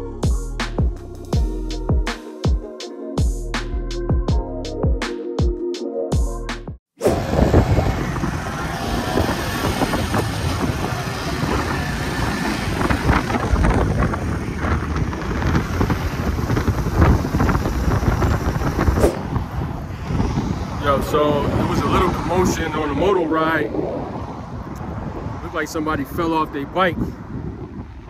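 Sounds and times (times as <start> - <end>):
motorcycle rumble: 7.0 - 25.1
passing traffic: 7.0 - 28.0
wind buffeting microphone: 7.1 - 28.0.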